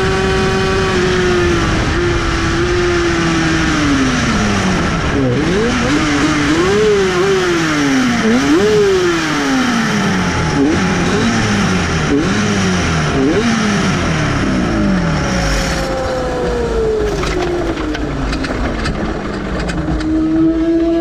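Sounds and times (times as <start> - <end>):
race motorcycle engine: 0.0 - 21.0.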